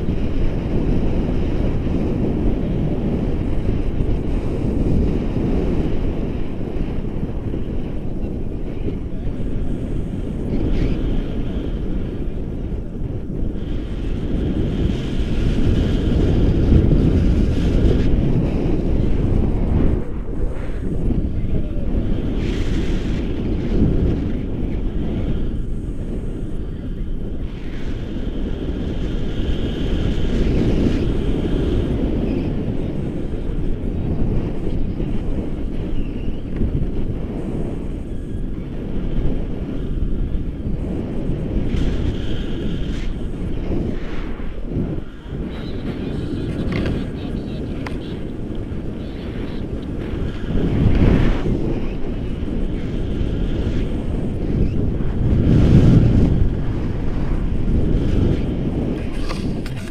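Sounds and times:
wind rushing over microphone: 0.0 - 59.9.

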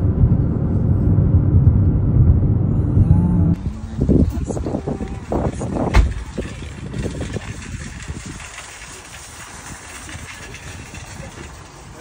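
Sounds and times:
rushing wind noise: 0.0 - 12.0.

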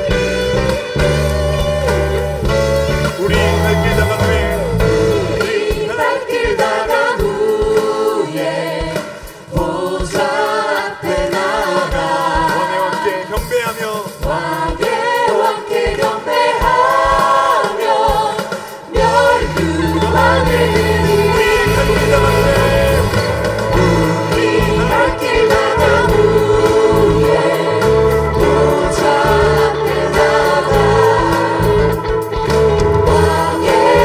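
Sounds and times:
choir and band: 0.0 - 34.0
people singing worship song in unison: 0.0 - 34.0.

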